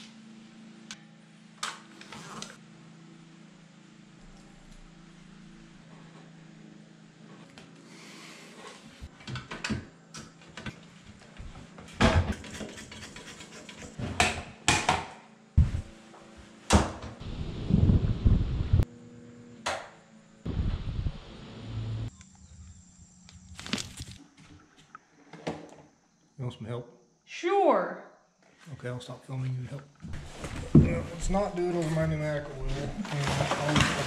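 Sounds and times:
tools knocking and scraping: 12.0s - 15.0s.

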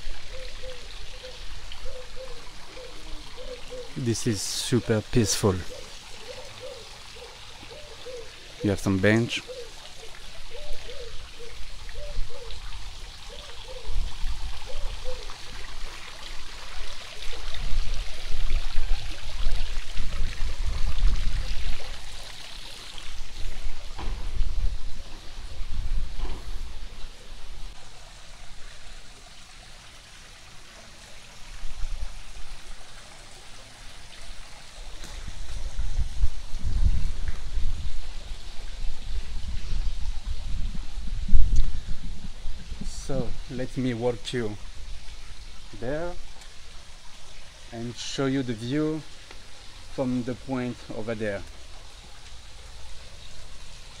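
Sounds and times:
fountain water splashing: 0.0s - 54.0s
wind rumbling on microphone: 17.4s - 22.1s, 23.1s - 27.8s, 35.1s - 43.6s.

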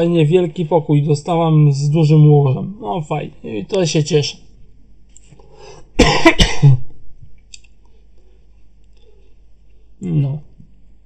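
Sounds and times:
person coughing: 6.0s - 6.9s.

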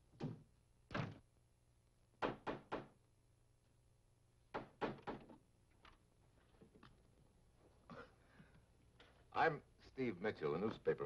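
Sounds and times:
knocks on wooden door: 2.2s - 3.0s.

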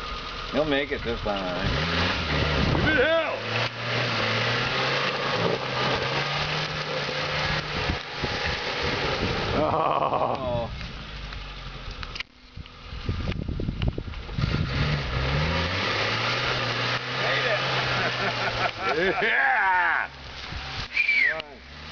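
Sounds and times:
off-road vehicle engine climbing: 0.0s - 21.9s.

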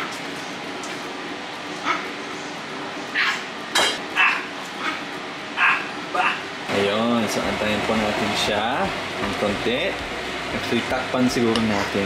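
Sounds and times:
small dog yipping: 3.2s - 3.4s, 4.2s - 5.0s, 5.6s - 6.4s.

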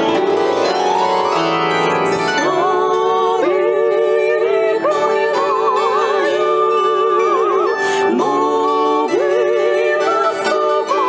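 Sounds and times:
bandura accompaniment: 0.0s - 11.0s
women singing in harmony: 2.2s - 11.0s.

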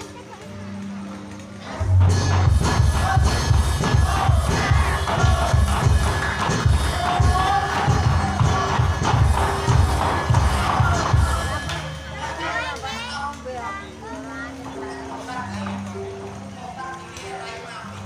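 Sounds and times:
crowd shouting: 1.7s - 14.8s
fast heavy drumming music: 1.8s - 12.2s.

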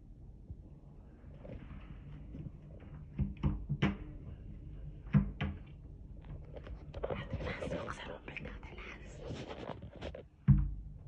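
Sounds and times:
person whispering: 7.0s - 9.7s.

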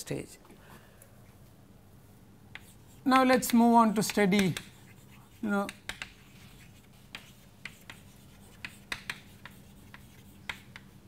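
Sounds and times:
low steady hum: 0.0s - 11.0s
chalk tapping on chalkboard: 2.5s - 11.0s.

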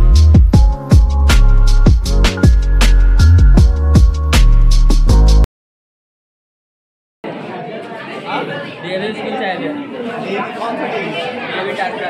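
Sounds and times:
overlapping chatter: 7.2s - 12.0s.

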